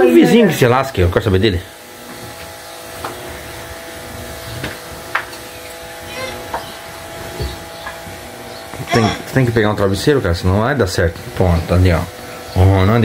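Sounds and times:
electric motor humming: 0.0s - 13.0s.

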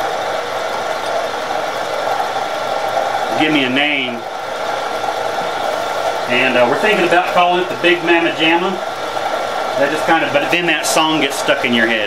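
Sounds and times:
coolant spray hiss: 0.0s - 12.0s
milling machine hum: 0.0s - 12.0s.

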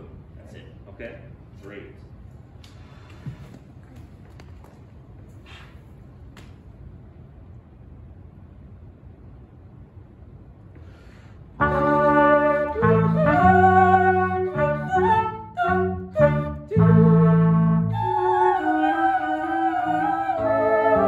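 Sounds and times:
small instrumental ensemble chords: 11.6s - 21.0s.

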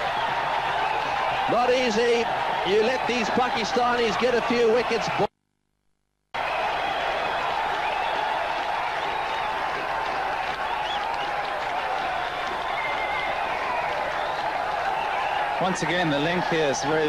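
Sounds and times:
stadium crowd cheering and applauding: 0.0s - 5.3s, 6.4s - 17.0s.

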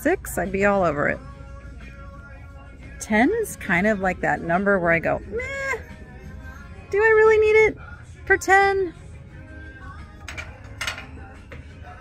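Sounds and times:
faint background music: 0.0s - 12.0s
china scraping wire shelf: 10.2s - 11.3s.

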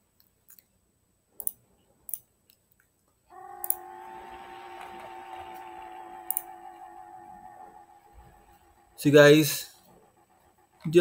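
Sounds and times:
steady multi-pitch hum: 3.3s - 11.0s.

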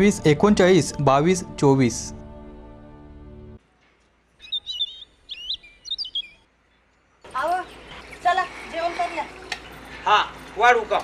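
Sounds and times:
bird chirping: 4.3s - 10.0s.

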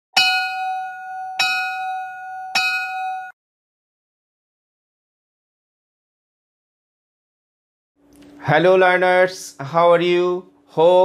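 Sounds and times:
bell-like chime ringing: 0.2s - 3.4s.

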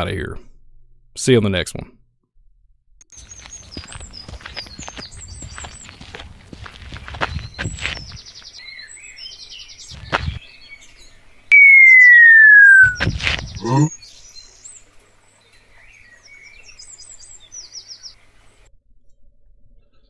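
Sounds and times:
birds chirping: 3.1s - 14.8s
footsteps: 3.2s - 8.4s, 9.9s - 10.4s, 12.8s - 13.9s
descending whistle tone: 11.5s - 13.9s.

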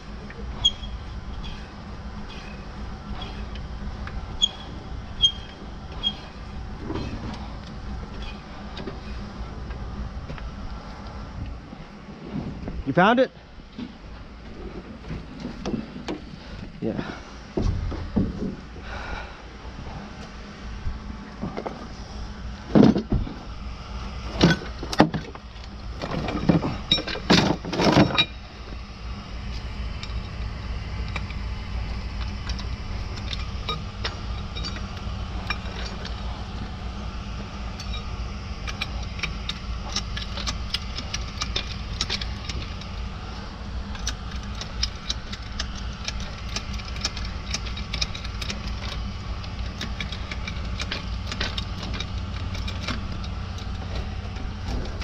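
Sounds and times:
steady low rumble: 0.0s - 55.0s.

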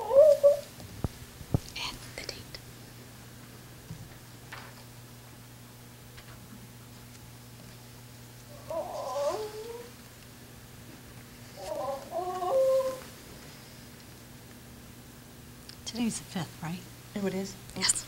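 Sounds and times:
low electrical hum: 0.0s - 18.0s.

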